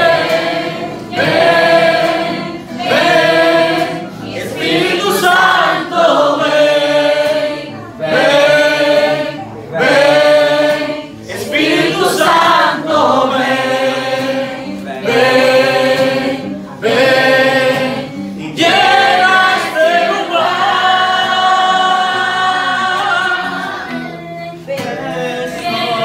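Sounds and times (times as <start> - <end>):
men singing worship song: 0.0 - 23.8, 24.8 - 26.0
acoustic guitar strumming: 0.0 - 26.0.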